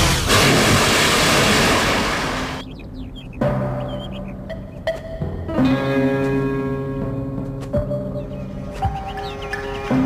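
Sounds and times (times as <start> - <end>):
huge water splash from blast: 0.0 - 2.6.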